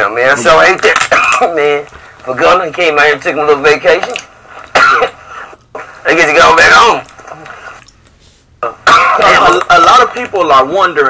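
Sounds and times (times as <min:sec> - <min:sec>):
man coughing: 0:01.0 - 0:01.7, 0:04.7 - 0:05.3, 0:08.6 - 0:09.5.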